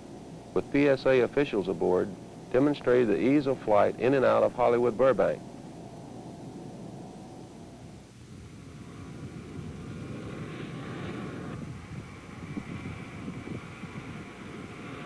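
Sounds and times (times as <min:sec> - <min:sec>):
jet airliner flying past: 0:08.3 - 0:15.0.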